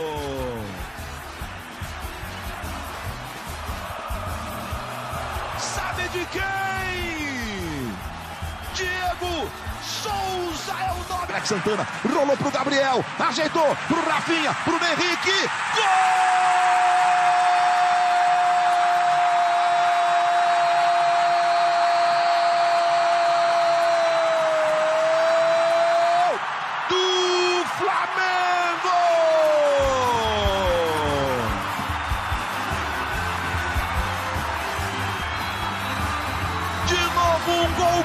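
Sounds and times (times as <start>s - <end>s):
music with heavy deep beat: 0.0s - 9.9s, 30.0s - 37.7s
stadium crowd noise: 0.0s - 38.0s.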